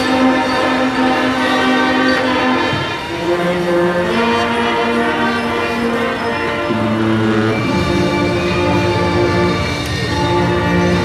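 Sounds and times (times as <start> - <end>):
marching brass band playing: 0.0 - 11.0.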